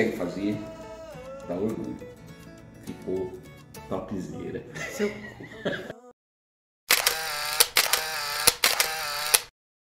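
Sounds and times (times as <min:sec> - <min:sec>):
sharp clicks and pops: 0:06.9 - 0:09.5.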